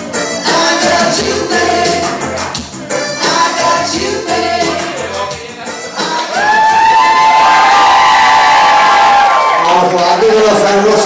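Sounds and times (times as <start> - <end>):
crowd cheering: 6.0 - 11.0
long high whoop: 6.3 - 9.6.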